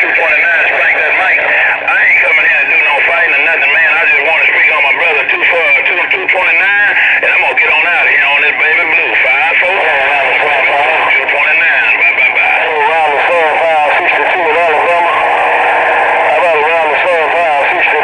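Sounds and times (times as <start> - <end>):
radio voices warbling: 0.0 - 18.0.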